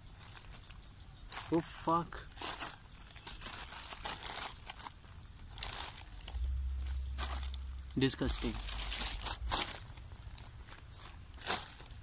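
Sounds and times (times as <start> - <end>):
plastic bubble wrap crinkling: 0.2 - 1.6, 2.3 - 12.0
low rumble: 5.6 - 10.9.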